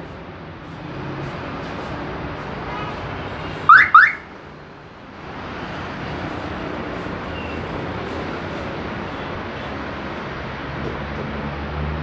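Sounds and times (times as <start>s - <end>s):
steady background noise: 0.0s - 12.0s
car alarm chirps: 3.7s - 4.2s.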